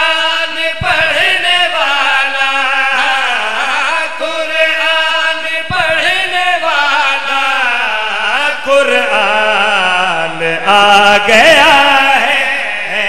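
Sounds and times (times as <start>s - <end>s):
men chanting: 0.0s - 13.0s.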